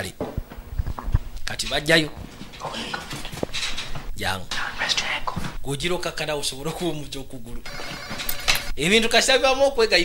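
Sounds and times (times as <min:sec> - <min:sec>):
man speaking: 0:01.4 - 0:02.2, 0:05.6 - 0:07.7, 0:08.7 - 0:10.0
high ringing tone: 0:07.6 - 0:08.8.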